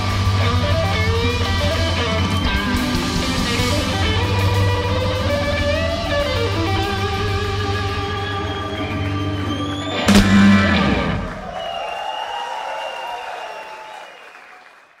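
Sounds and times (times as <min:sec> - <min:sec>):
live rock band: 0:00.0 - 0:11.6
band ending hit ringing: 0:10.1 - 0:11.5.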